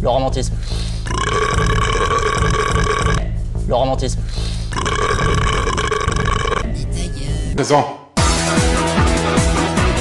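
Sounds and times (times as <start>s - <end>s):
droning vocal burp: 1.0s - 3.3s, 4.7s - 7.0s
person speaking: 6.6s - 8.1s
music with steady bass line: 8.2s - 10.0s.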